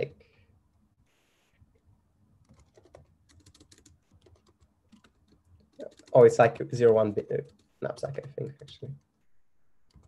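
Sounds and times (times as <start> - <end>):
typing on computer keyboard: 2.4 - 8.8.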